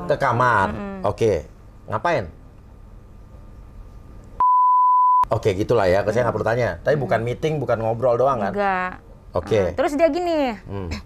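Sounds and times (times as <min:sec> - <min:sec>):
high censor bleep: 0:04.4 - 0:05.3.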